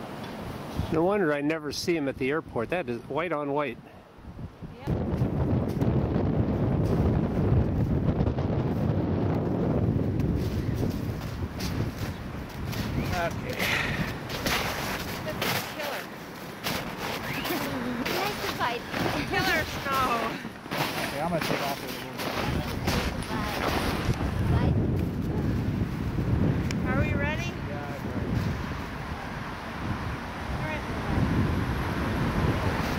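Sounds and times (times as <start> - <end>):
wind on microphone: 4.2 - 15.8, 22.2 - 32.9.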